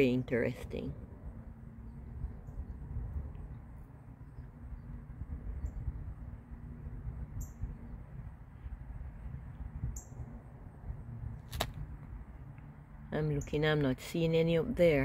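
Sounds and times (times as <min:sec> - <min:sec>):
outdoor background rumble: 0:00.0 - 0:15.0
sharp click: 0:11.5 - 0:11.8.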